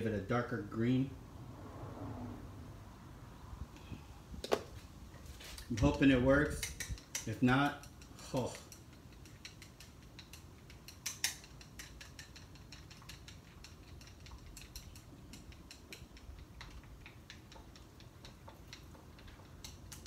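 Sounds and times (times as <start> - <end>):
chopsticks clicking against bowl: 5.7 - 20.0.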